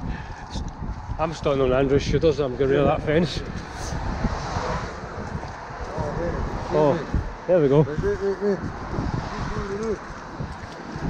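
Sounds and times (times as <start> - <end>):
road traffic passing: 0.0 - 11.0
wind on microphone: 0.0 - 11.0.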